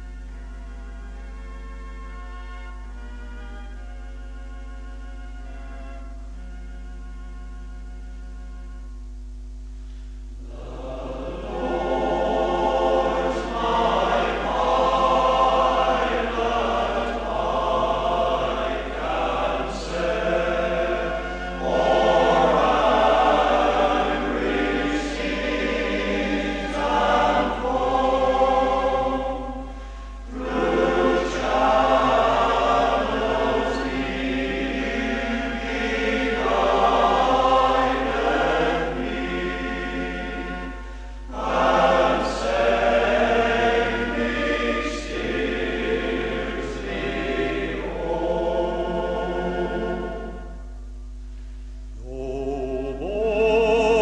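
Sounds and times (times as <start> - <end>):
male voice choir singing: 10.4 - 50.6, 52.0 - 54.0.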